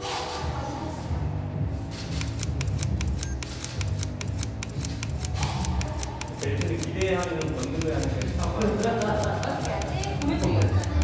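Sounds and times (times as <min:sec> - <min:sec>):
camera shutter clicks: 0:02.1 - 0:09.9.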